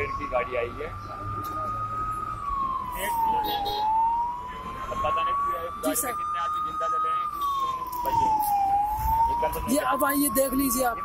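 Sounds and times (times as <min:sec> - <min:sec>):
fire engine siren wailing: 0:00.0 - 0:11.0.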